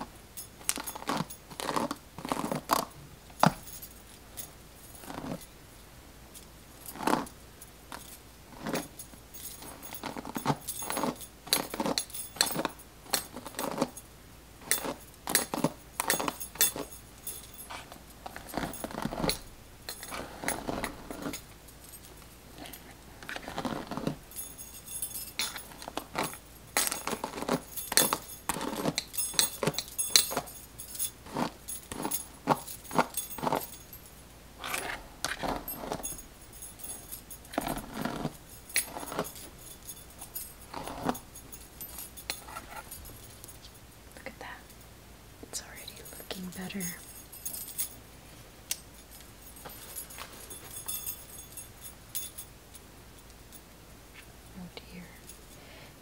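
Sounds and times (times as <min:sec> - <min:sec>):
metal bracelets jangling: 0:00.3 - 0:05.6, 0:06.3 - 0:44.8, 0:45.5 - 0:53.7, 0:54.6 - 0:55.7.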